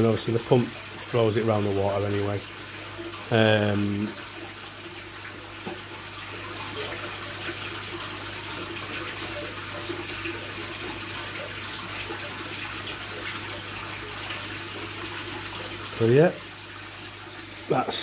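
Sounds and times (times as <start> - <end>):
water splashing into aquarium: 0.0 - 18.0
water trickling from jug: 0.0 - 18.0.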